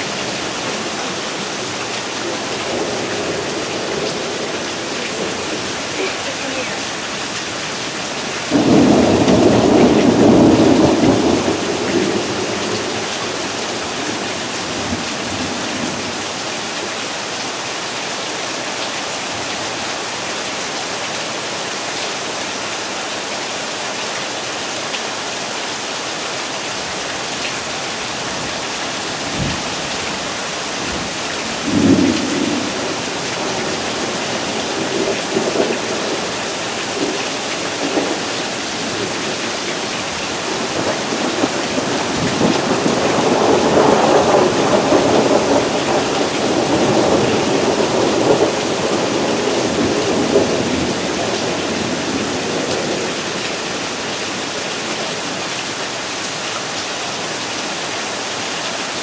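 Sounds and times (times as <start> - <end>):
steady rain falling: 0.0 - 59.0
thunder rumbling: 8.5 - 16.0, 30.9 - 53.4.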